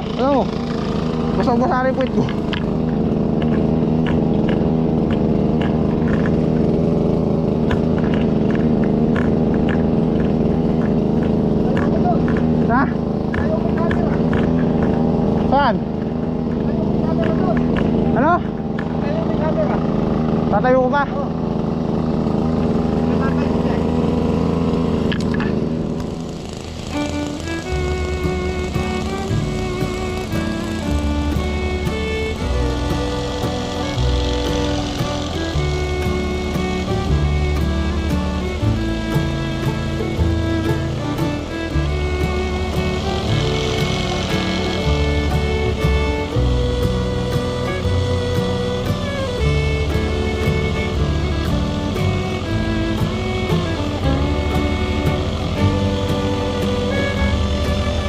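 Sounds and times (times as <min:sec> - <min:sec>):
small engine running: 0:00.0 - 0:58.0
background music: 0:26.6 - 0:58.0.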